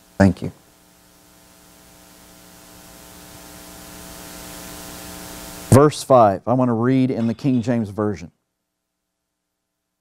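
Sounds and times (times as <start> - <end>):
electrical mains hum with hiss: 0.0 - 10.0.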